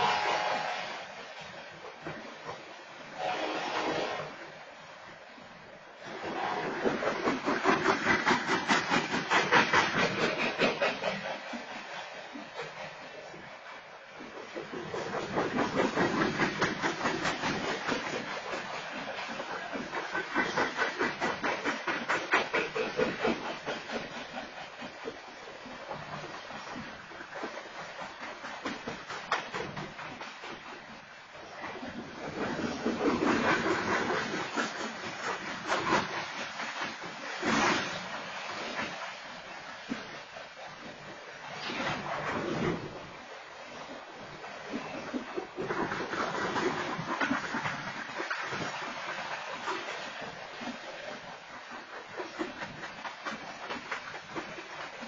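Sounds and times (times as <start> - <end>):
train wheels clattering on rails: 6.3 - 11.7, 14.2 - 25.1.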